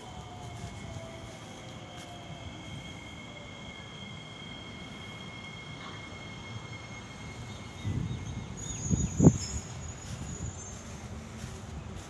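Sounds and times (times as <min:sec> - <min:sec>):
high steady whining tones: 0:00.0 - 0:12.0
lower whine sliding down: 0:00.0 - 0:12.0
train rumble: 0:00.0 - 0:12.0.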